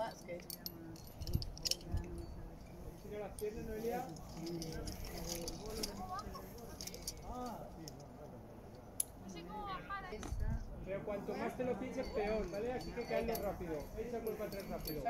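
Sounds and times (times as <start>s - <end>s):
climbing gear metallic clinks: 0.0s - 9.2s, 11.9s - 15.0s
quiet voices talking: 0.0s - 15.0s.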